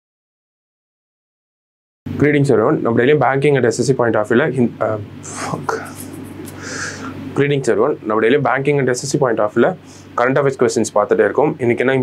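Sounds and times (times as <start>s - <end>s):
low steady hum: 2.1s - 12.0s
man breathing softly: 6.0s - 7.2s, 9.8s - 10.2s.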